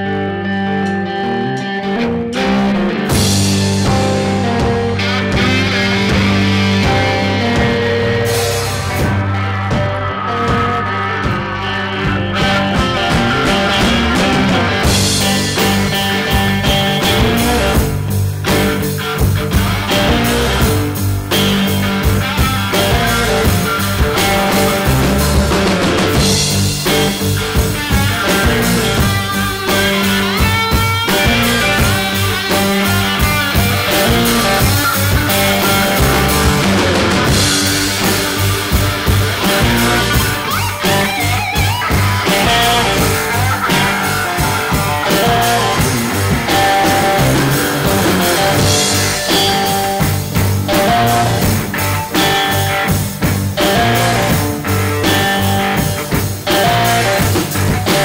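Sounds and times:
blues-rock band playing: 0:00.0 - 0:58.0
drums: 0:00.0 - 0:58.0
lead electric guitar: 0:00.0 - 0:58.0.

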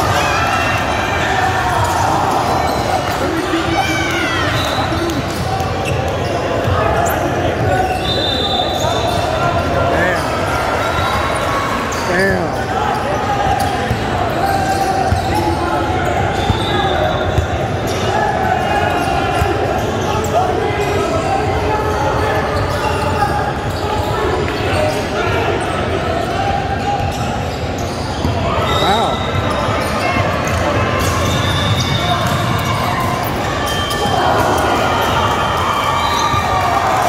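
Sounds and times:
voices echoing in hall: 0:00.0 - 0:37.0.

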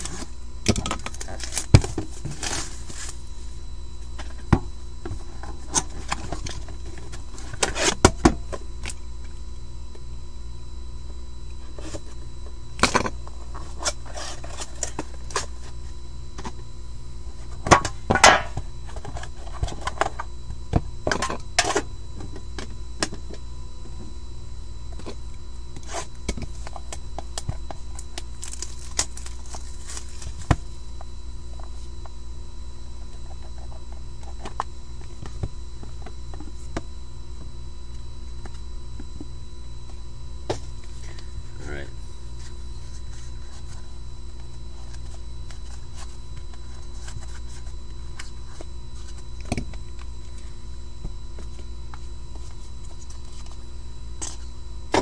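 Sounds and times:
steady background hum: 0:00.0 - 0:55.0.

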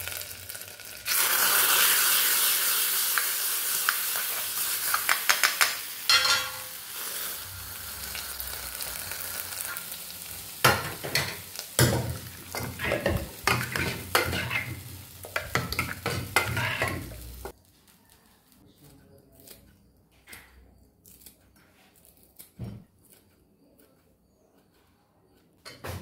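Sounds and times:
hot oil sizzling: 0:00.0 - 0:17.6.

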